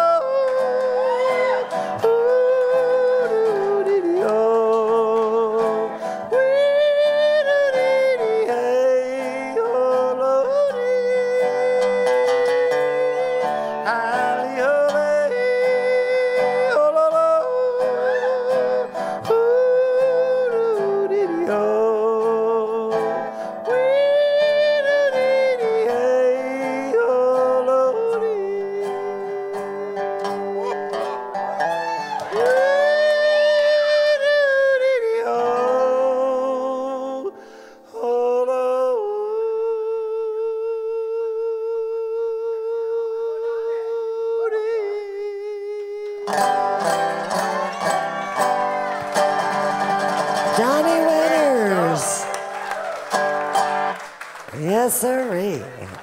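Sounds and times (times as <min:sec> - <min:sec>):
man yodeling: 0:00.0 - 0:52.7
guitar accompaniment: 0:00.0 - 0:56.0.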